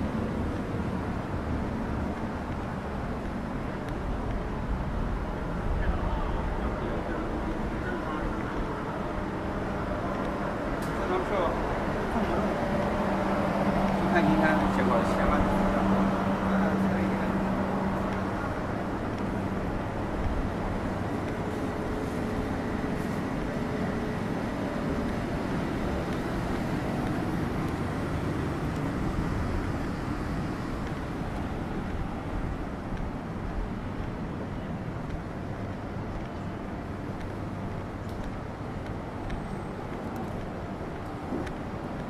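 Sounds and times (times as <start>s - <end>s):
city traffic hum: 0.0s - 42.0s.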